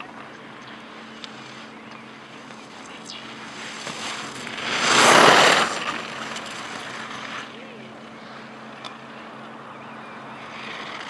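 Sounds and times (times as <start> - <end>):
steady low hum: 0.0 - 11.0
skis scraping across snow: 3.4 - 7.5.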